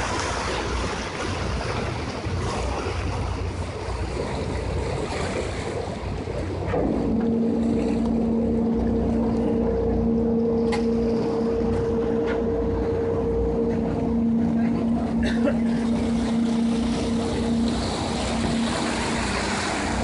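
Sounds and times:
boat engine droning hum: 0:00.0 - 0:20.0
water noise: 0:00.0 - 0:20.0
wind: 0:00.0 - 0:20.0.

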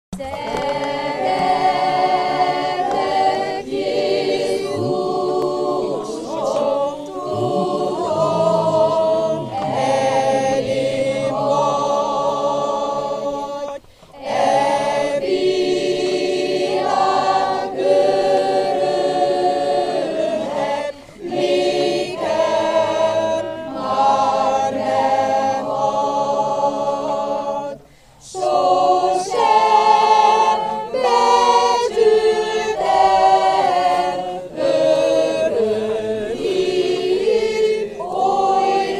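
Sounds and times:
women's choir singing a hymn: 0:00.2 - 0:38.9.

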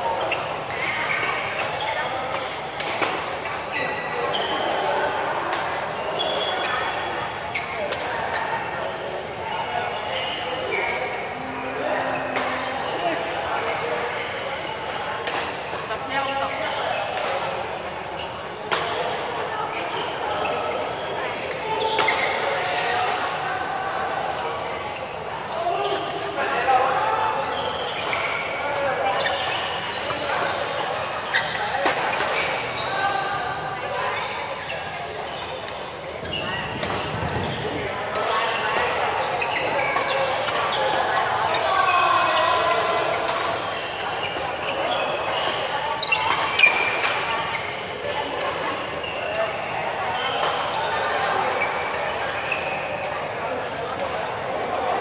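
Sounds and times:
chatter of voices: 0:00.0 - 0:55.0.

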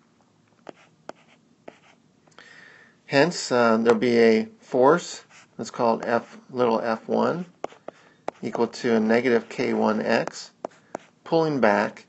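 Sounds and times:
stylus tapping on tablet screen: 0:00.7 - 0:01.8, 0:07.6 - 0:08.7, 0:09.8 - 0:11.1
stylus scratching on screen: 0:00.7 - 0:02.0, 0:07.0 - 0:11.2.

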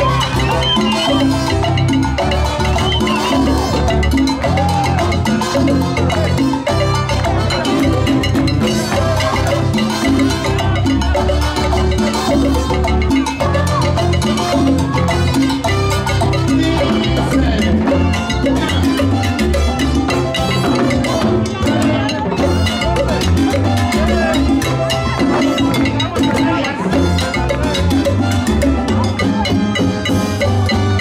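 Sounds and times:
salsa music through a pa: 0:00.0 - 0:31.0.

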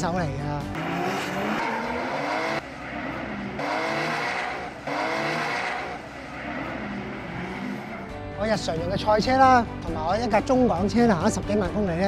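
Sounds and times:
car engine revving: 0:00.6 - 0:08.4
tyres squealing and skidding: 0:00.8 - 0:08.3.

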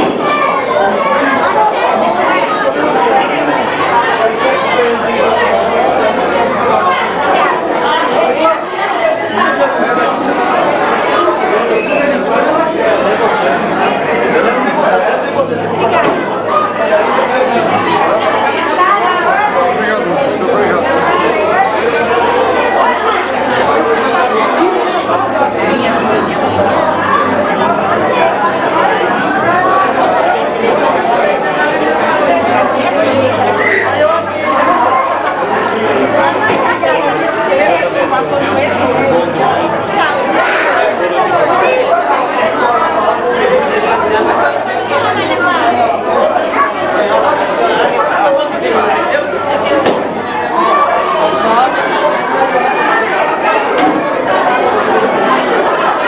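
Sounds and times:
babble of many people talking: 0:00.0 - 0:56.0.

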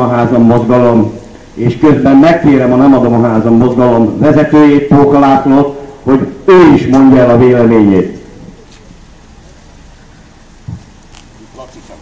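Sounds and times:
street background hiss and rumble: 0:00.0 - 0:12.0
low thump: 0:10.6 - 0:10.9.

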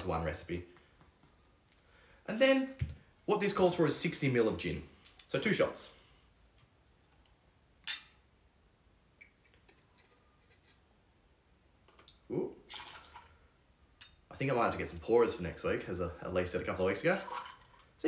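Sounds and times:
liquid trickling into metal cup: 0:12.7 - 0:13.4, 0:17.1 - 0:17.9.

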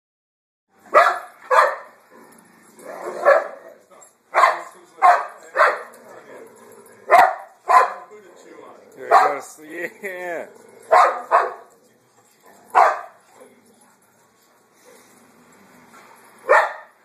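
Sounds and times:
dogs barking: 0:00.9 - 0:02.0, 0:02.8 - 0:08.1, 0:09.0 - 0:09.5, 0:10.8 - 0:11.8, 0:12.5 - 0:13.3, 0:16.4 - 0:17.0.

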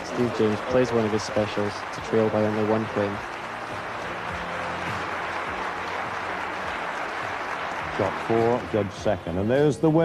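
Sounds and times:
audience applauding: 0:00.0 - 0:09.5.

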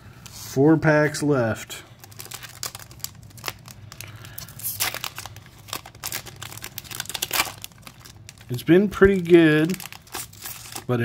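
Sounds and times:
foil wrapper tearing and crinkling: 0:02.0 - 0:11.0.

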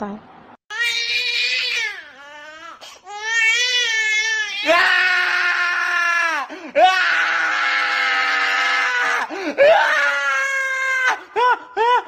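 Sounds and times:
person screaming: 0:04.6 - 0:12.0.

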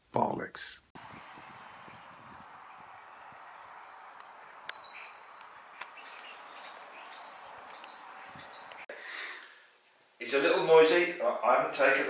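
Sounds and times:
small birds chirping: 0:01.0 - 0:08.9
distant background hiss: 0:01.0 - 0:10.1.

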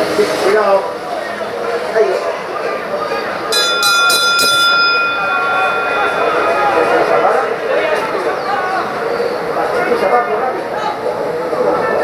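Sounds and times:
hand bell ringing: 0:03.5 - 0:08.2.

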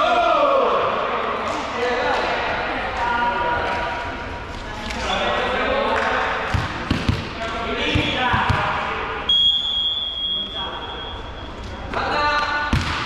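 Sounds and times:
volleyball bouncing on gym floor: 0:06.4 - 0:09.0, 0:12.4 - 0:13.0.

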